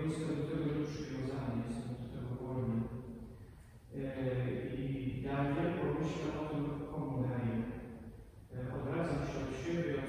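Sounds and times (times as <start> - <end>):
man chanting a prayer: 0.0 - 2.9, 3.9 - 7.8, 8.5 - 10.0.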